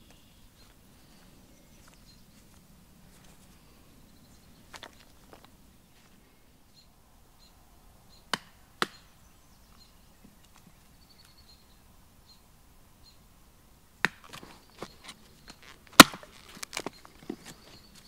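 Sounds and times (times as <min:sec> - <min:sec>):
forest ambience: 0:00.0 - 0:18.0.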